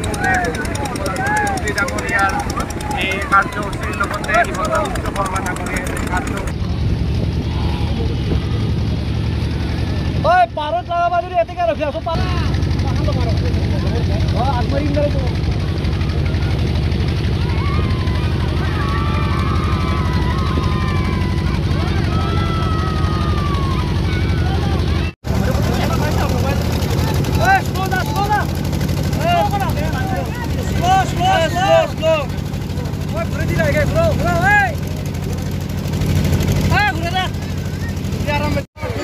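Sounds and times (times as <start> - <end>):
people calling out: 0.0 - 6.5, 17.3 - 25.2, 26.8 - 34.8
motorboat engine humming: 0.0 - 39.0.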